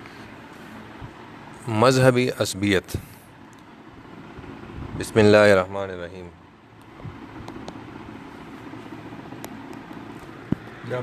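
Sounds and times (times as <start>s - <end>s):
steady low background noise: 0.0s - 11.0s.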